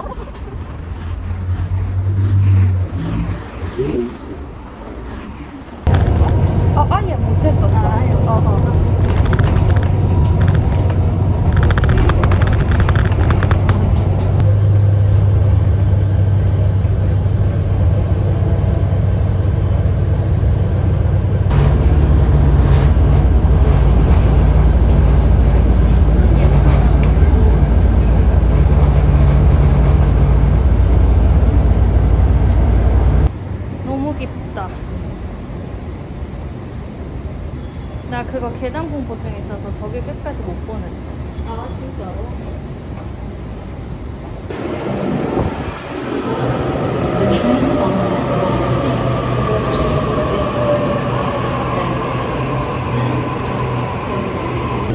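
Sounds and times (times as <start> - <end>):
bus engine and road rumble: 0.0 - 54.9.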